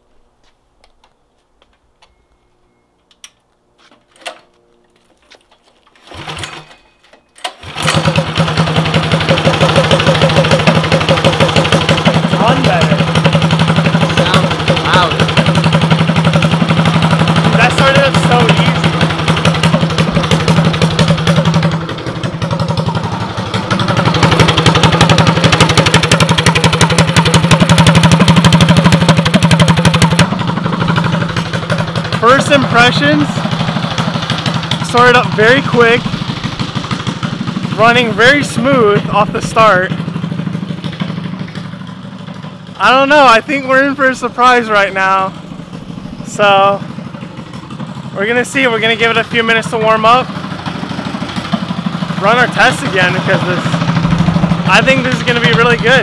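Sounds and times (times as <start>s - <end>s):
pull-starting small engine: 5.5s - 37.2s
go-kart engine running: 5.9s - 6.8s, 7.4s - 56.0s.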